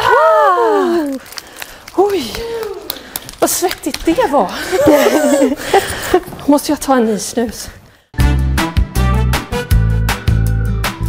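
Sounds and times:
woman cheering: 4.7 - 5.6.

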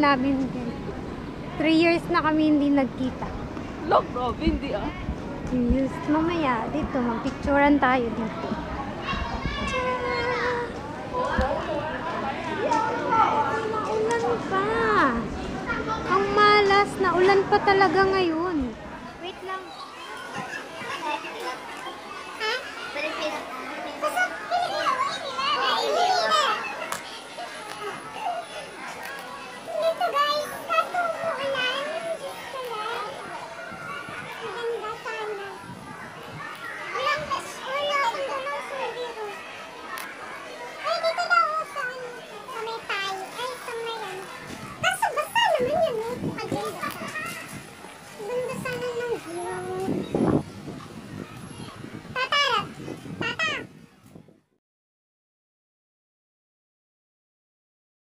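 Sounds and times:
children calling out at play: 8.4 - 53.9.

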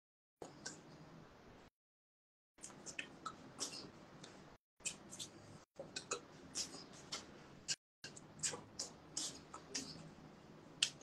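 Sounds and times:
hands clicking and slapping: 10.8 - 11.0.

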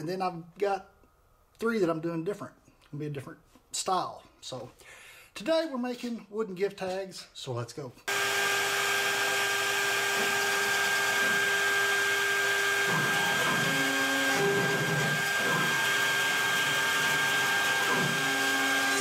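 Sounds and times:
router spindle whine: 8.1 - 19.0.

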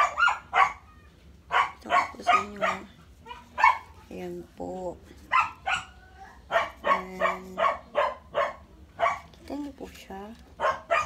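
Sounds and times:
dog barking: 0.0 - 0.9, 1.5 - 4.0, 5.3 - 9.4, 10.6 - 11.0.

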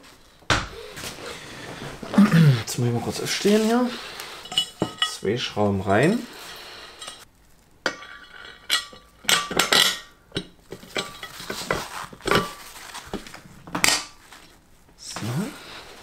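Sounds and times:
metal bolts clinking: 4.4 - 5.3.

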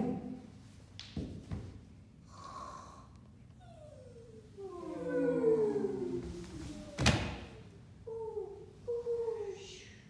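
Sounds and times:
voices holding wordless sound: 3.8 - 10.0.

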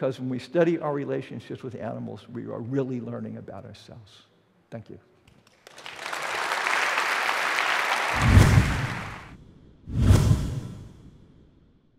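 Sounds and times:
audience applauding: 5.4 - 9.3.

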